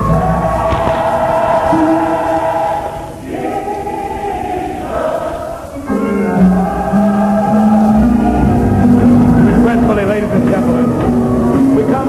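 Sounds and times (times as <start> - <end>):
gospel choir singing: 0.0 - 12.0
radio static hiss: 0.0 - 12.0.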